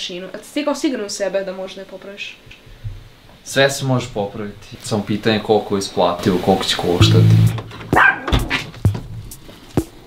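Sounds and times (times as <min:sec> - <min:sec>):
dog yipping: 0:07.9 - 0:08.4.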